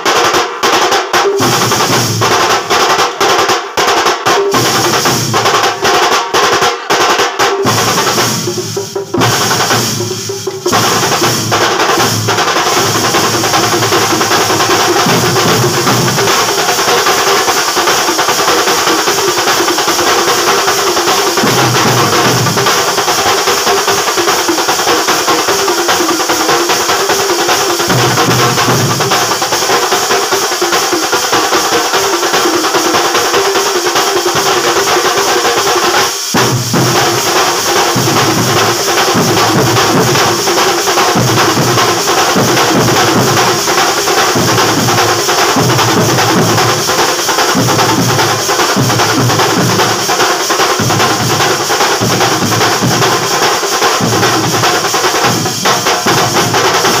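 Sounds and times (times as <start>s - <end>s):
barrel drums beaten fast: 0.0s - 57.0s.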